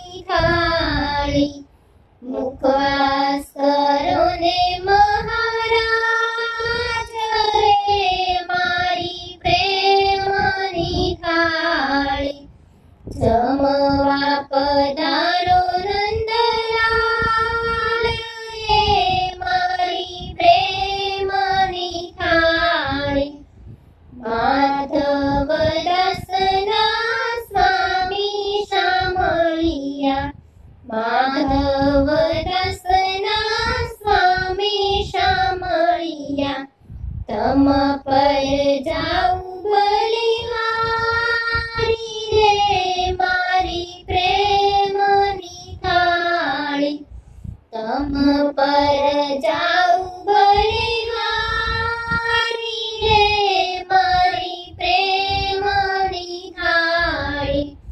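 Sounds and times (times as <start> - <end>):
high voice singing devotional song: 0.0 - 57.9.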